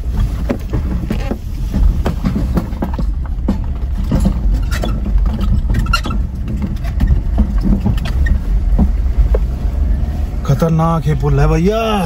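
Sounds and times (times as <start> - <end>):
small knocks and rattles: 0.0 - 9.6
road and engine rumble: 0.0 - 12.0.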